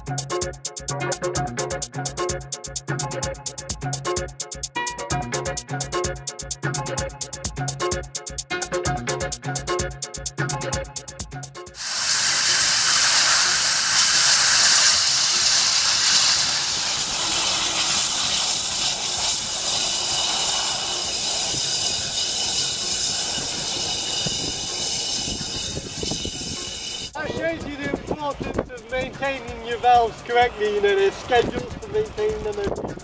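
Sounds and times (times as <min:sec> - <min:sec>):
gas jet fire hissing: 0:11.8 - 0:27.2.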